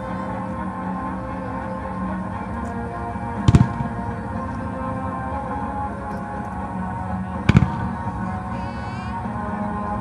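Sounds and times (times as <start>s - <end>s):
show music: 0.0s - 10.0s.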